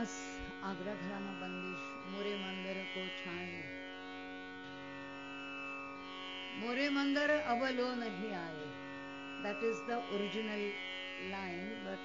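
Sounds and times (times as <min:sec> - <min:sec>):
tanpura drone: 0:00.0 - 0:12.0.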